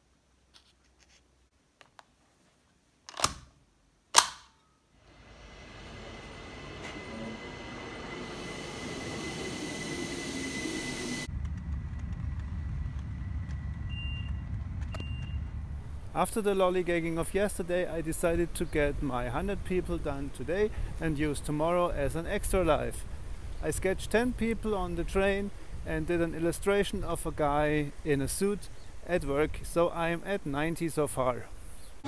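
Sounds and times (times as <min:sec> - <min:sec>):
electric train pulling in: 0:05.0 - 0:16.1
thin steady whine: 0:05.0 - 0:29.1
low steady rumble: 0:11.0 - 0:32.0.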